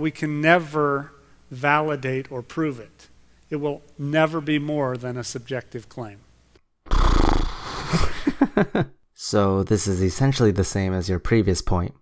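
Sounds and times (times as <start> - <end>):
man laughing briefly: 7.8 - 8.8.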